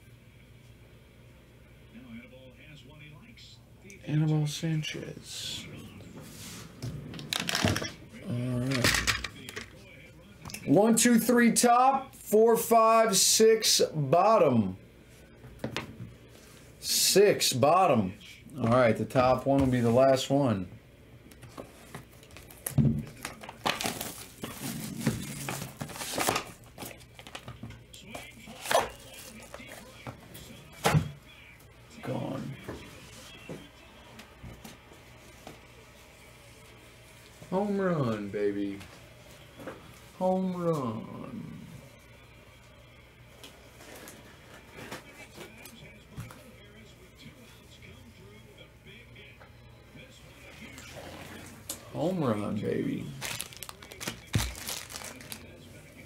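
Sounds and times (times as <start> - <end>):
faint background voices: 21.4 - 56.0
cardboard packaging crinkling: 22.2 - 27.4, 53.1 - 55.6.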